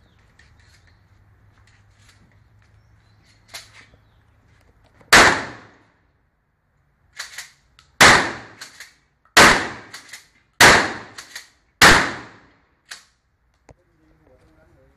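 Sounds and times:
shotgun shots: 0:05.1 - 0:05.8, 0:08.0 - 0:08.8, 0:09.4 - 0:12.6.

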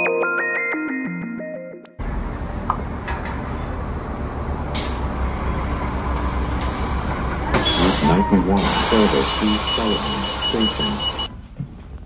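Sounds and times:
bus engine rumble: 0:02.0 - 0:12.0
bus air system hissing: 0:07.6 - 0:11.3.

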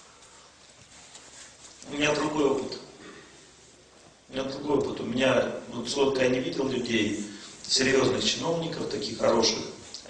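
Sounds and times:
man speaking: 0:01.8 - 0:03.0, 0:04.3 - 0:09.9.

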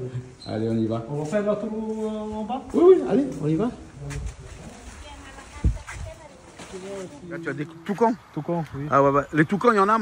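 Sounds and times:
footsteps on dirt path: 0:00.6 - 0:08.0.

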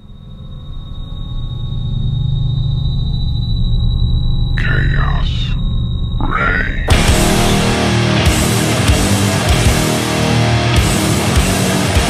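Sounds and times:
high-pitched feedback whine: 0:00.0 - 0:09.0
amplifier low hum: 0:04.6 - 0:08.6.

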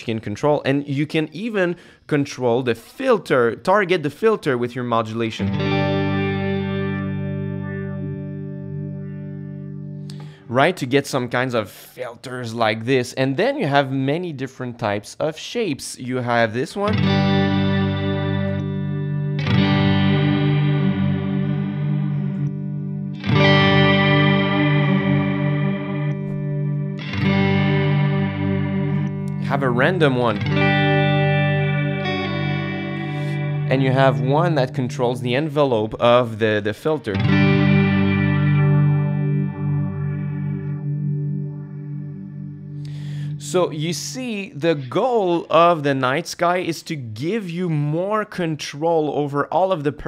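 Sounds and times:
electric guitar chords with reverb: 0:05.4 - 0:10.5, 0:16.9 - 0:35.2, 0:37.1 - 0:43.7.

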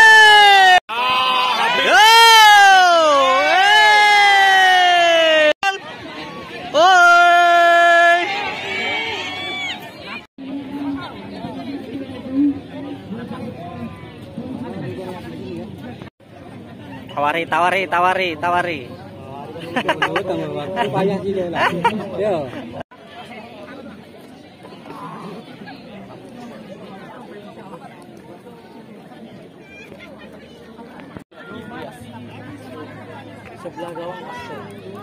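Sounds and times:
chatter of voices: 0:05.0 - 0:35.0.

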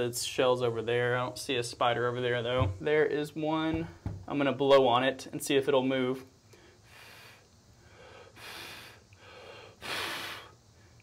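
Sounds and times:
man blowing short puffs: 0:06.5 - 0:11.0.

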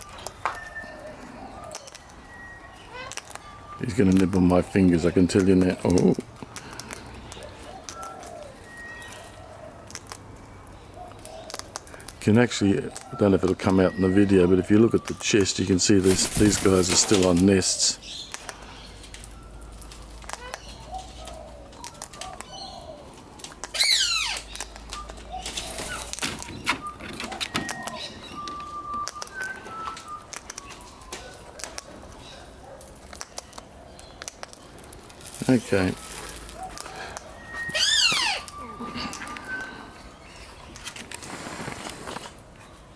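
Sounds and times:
bird beak cracking seeds: 0:01.7 - 0:02.2, 0:03.0 - 0:03.4, 0:05.3 - 0:08.4, 0:09.8 - 0:10.3, 0:11.2 - 0:12.2, 0:18.3 - 0:22.6, 0:23.4 - 0:26.6, 0:29.0 - 0:32.0, 0:32.8 - 0:37.3.

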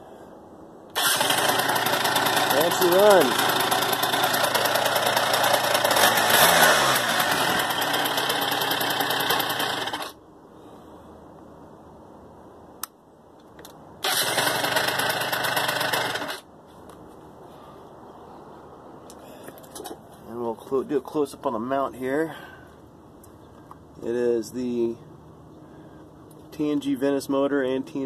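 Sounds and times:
scooter engine running: 0:01.0 - 0:10.1, 0:14.0 - 0:16.4.

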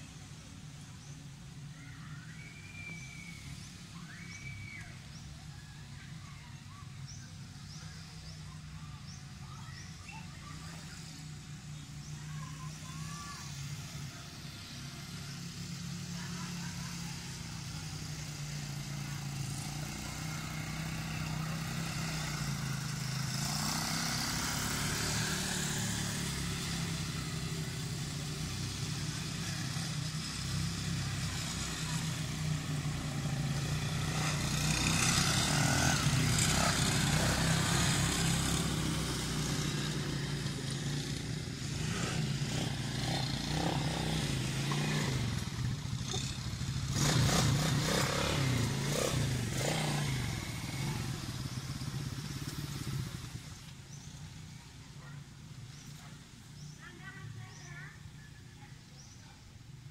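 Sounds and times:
small atv engines running: 0:00.0 - 0:59.9.

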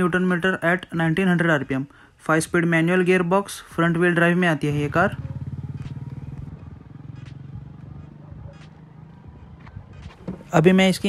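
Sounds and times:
passing vehicle engine: 0:04.1 - 0:10.6.

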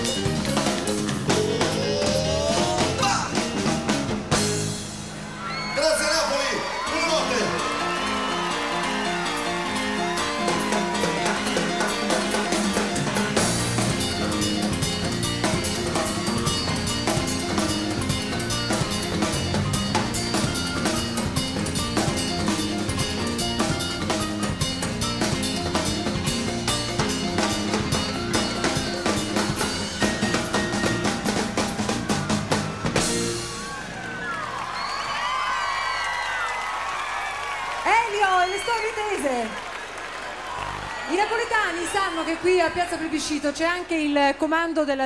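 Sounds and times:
live band drum-heavy instrumental: 0:00.0 - 0:06.1, 0:06.8 - 0:34.0
crowd cheering and whistling: 0:05.2 - 0:13.5, 0:18.0 - 0:21.3, 0:27.9 - 0:43.8.

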